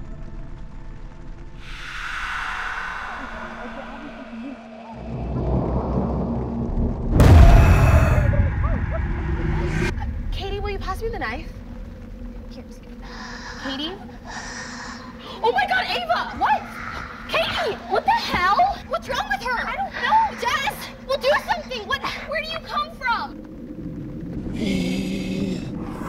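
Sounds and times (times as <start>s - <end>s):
lingering low drone: 0.0s - 15.1s, 22.9s - 26.0s
low rumble: 0.0s - 26.0s
sudden loud boom: 1.6s - 10.9s.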